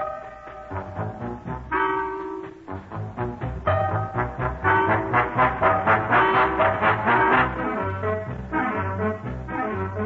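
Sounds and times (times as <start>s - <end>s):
swing band with brass: 2.6s - 10.0s.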